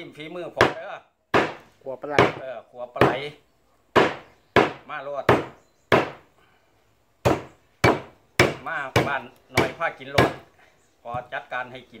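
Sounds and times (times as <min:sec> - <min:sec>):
knife chopping on wooden block: 0:00.6 - 0:01.6, 0:04.0 - 0:06.2, 0:07.2 - 0:10.4.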